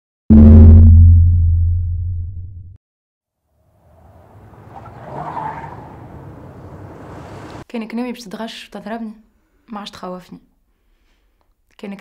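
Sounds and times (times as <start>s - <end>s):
car engine running: 3.8s - 7.6s
tyres rolling: 3.8s - 7.6s.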